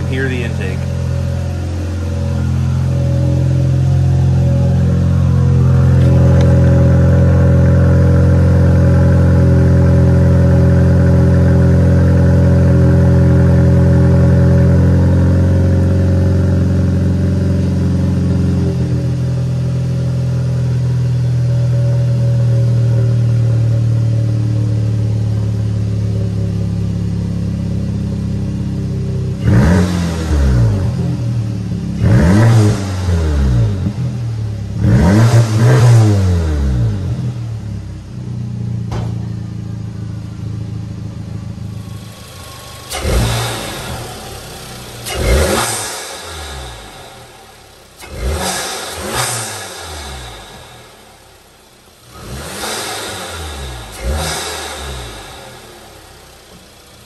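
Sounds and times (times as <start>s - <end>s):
car engine idling: 0.0s - 57.0s
car engine revving: 0.0s - 57.0s.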